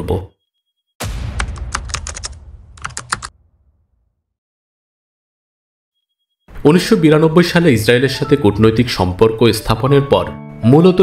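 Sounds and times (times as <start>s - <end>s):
low rumble: 1.0s - 4.1s.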